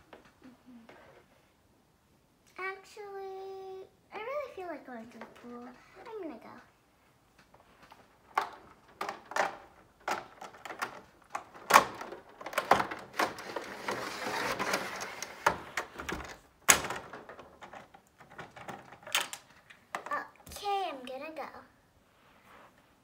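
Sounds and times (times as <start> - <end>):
plastic doll clicking and knocking: 7.9 - 20.6
soft rustling: 22.0 - 23.0.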